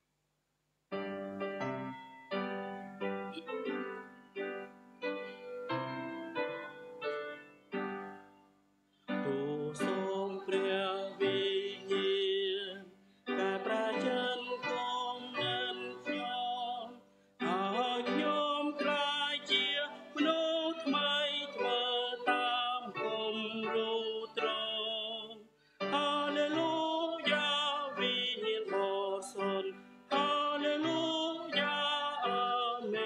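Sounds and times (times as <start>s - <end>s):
instrumental accompaniment: 0.9s - 33.0s
voices singing a hymn: 9.2s - 33.0s.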